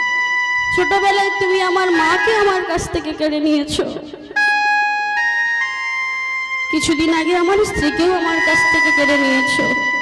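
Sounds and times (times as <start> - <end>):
harmonium held notes: 0.0 - 10.0.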